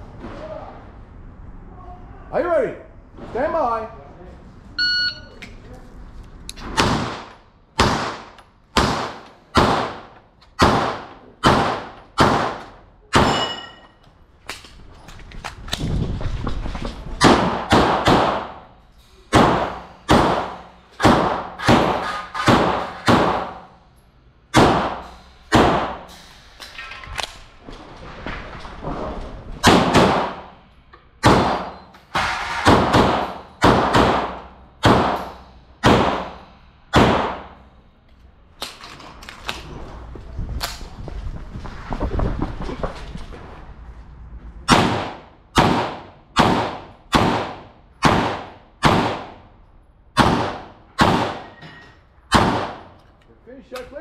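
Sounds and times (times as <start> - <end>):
pistol shots echoing indoors: 6.8 - 13.6, 17.2 - 23.8, 24.5 - 26.1, 29.6 - 30.6, 31.2 - 37.7, 44.7 - 49.5, 50.1 - 51.6, 52.3 - 53.0.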